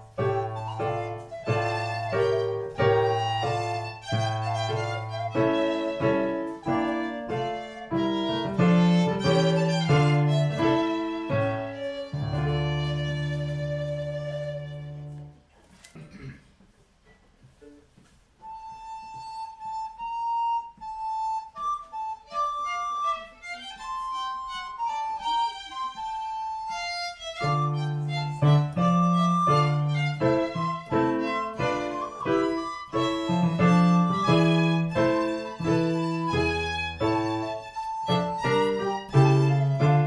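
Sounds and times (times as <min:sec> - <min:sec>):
violin: 0:00.0 - 0:15.4, 0:18.4 - 0:40.0.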